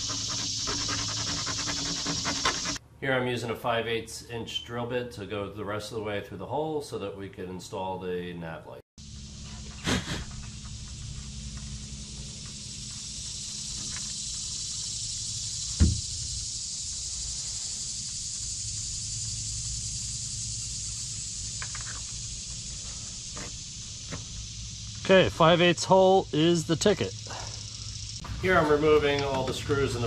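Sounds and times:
high-pitched outdoor hiss: 0.0s - 2.8s, 9.0s - 30.0s
low hum: 9.0s - 28.6s.

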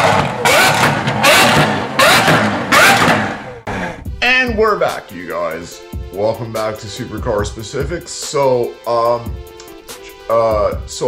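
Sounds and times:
car engine revving: 0.0s - 4.2s.

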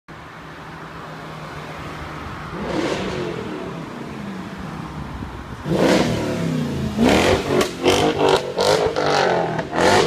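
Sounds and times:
street traffic: 0.1s - 10.0s.

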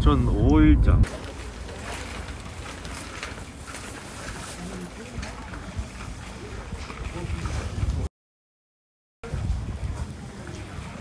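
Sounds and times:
faint indistinct voices: 1.1s - 8.1s, 9.2s - 11.0s.

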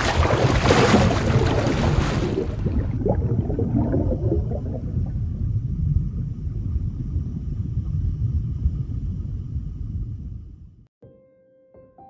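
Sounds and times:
bubbling gurgles: 0.0s - 6.6s
underwater rumble: 0.0s - 10.9s.

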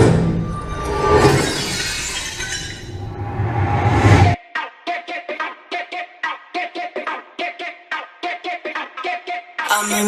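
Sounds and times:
glass shattering crash: 0.0s - 3.5s.

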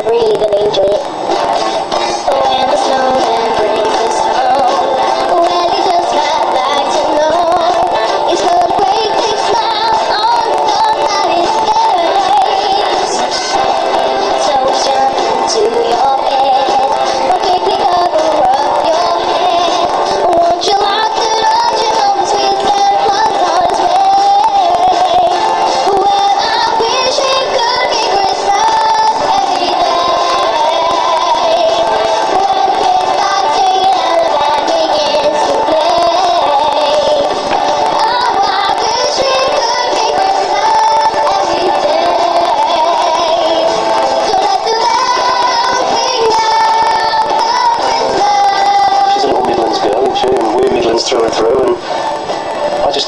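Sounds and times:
girl singing pop song: 0.0s - 51.4s
backing track: 0.0s - 53.0s.

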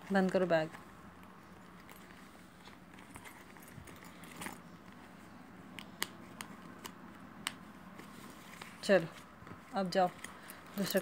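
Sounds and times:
bag rustling: 1.5s - 4.8s.

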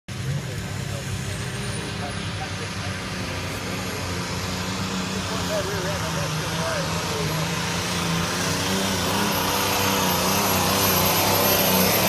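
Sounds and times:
diesel engine running under load: 0.1s - 12.0s.

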